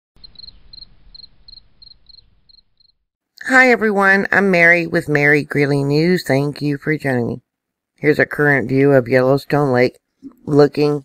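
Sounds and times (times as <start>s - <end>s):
cricket chirping: 0.2s - 3.0s.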